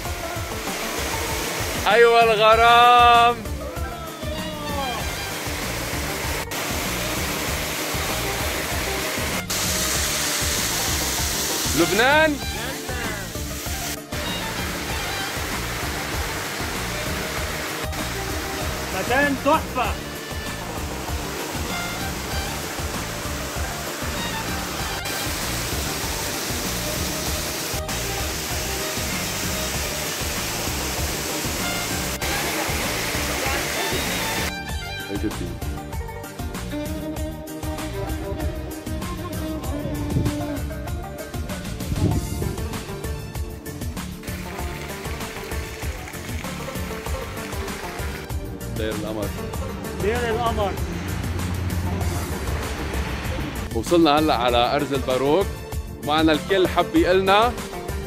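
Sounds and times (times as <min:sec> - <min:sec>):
water rushing from small waterfall: 0:00.0 - 0:34.5, 0:44.2 - 0:48.3, 0:49.1 - 0:53.7.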